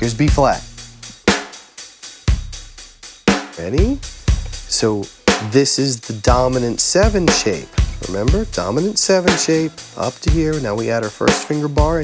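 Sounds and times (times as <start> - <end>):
slow drum-kit beat: 0.0 - 12.0.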